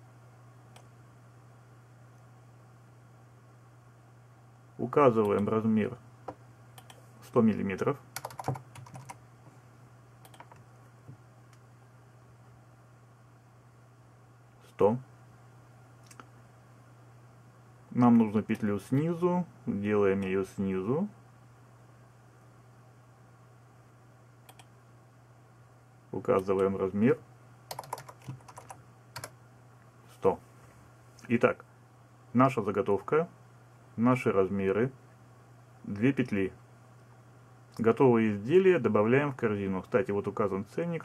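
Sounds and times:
computer keyboard typing: 0:08.2 - 0:09.2, 0:10.2 - 0:10.6, 0:27.7 - 0:29.4.

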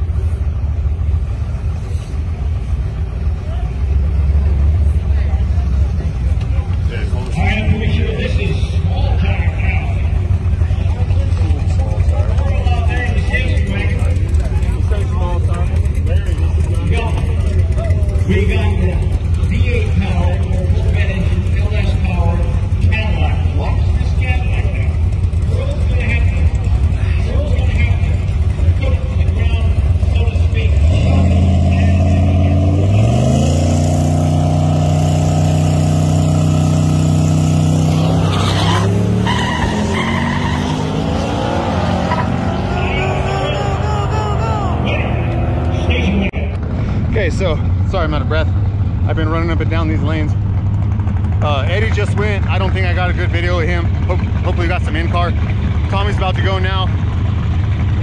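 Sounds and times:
car engine accelerating through gears: 0:28.2 - 0:47.9.

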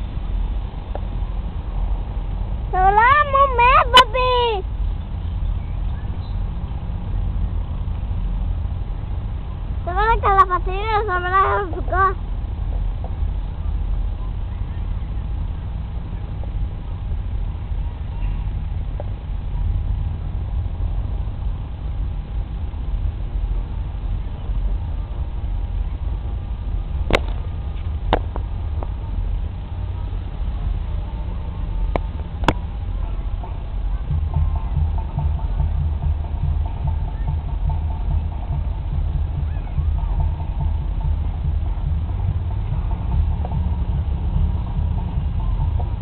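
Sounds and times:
low rumble: 0:00.0 - 0:46.0
wind buffeting microphone: 0:00.0 - 0:46.0.

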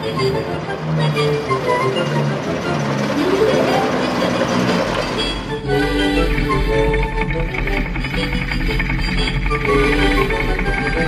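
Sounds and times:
car engine: 0:00.0 - 0:11.0
faint music: 0:00.0 - 0:11.0.

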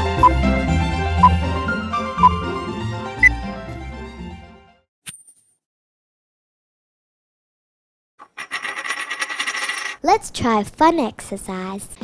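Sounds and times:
coin spinning and rattling: 0:08.2 - 0:10.0.

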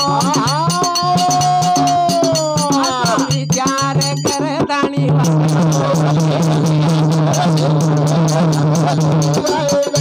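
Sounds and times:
voices singing together: 0:00.0 - 0:10.0.

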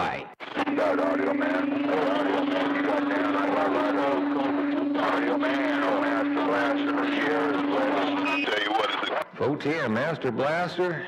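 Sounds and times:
garbled radio voices: 0:00.4 - 0:11.0.

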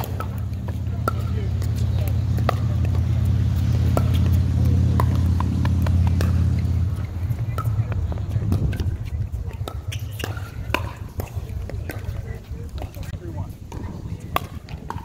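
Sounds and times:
low droning hum: 0:00.0 - 0:15.0
pickleball paddles hitting ball: 0:00.0 - 0:15.0.

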